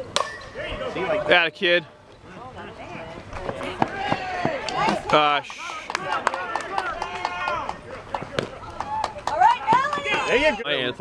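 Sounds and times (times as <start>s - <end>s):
voices calling out and talking: 0.0s - 11.0s.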